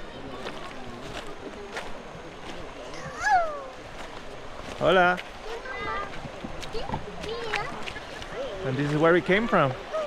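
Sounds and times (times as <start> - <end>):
faint voices: 0.0 - 10.0
river running over stones: 0.0 - 10.0.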